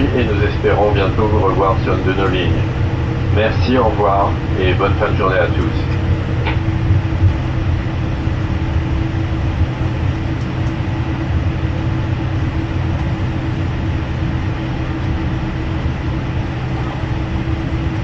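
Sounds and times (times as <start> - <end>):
steady mid-pitched tone: 0.0 - 10.1
jet engines idle hum: 0.0 - 18.0
low rolling rumble: 0.0 - 18.0.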